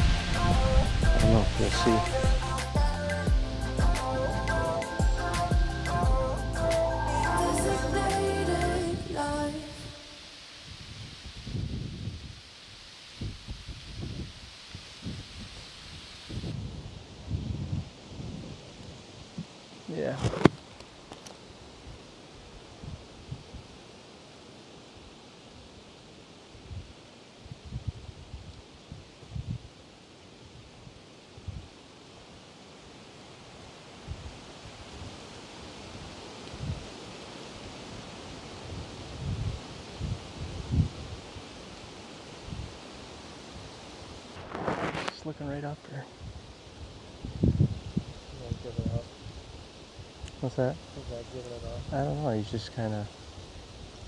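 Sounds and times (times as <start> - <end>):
low thumps on microphone: 0.0 - 4.0
leaves rustling: 0.0 - 54.0.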